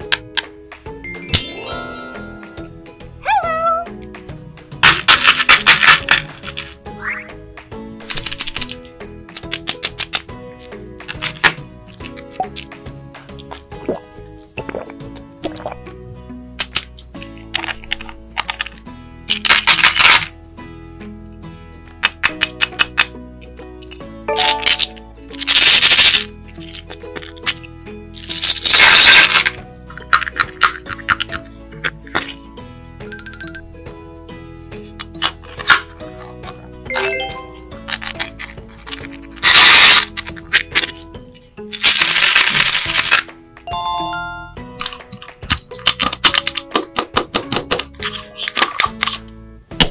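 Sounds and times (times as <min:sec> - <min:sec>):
soft background music: 0:00.0 - 0:49.9
plastic pieces and candies rattling: 0:04.8 - 0:06.8, 0:08.0 - 0:12.7, 0:16.6 - 0:20.3, 0:24.3 - 0:32.4, 0:36.9 - 0:41.1, 0:41.7 - 0:43.3, 0:44.8 - 0:49.2
candies pouring into plastic tub: 0:28.2 - 0:29.6, 0:41.8 - 0:44.1.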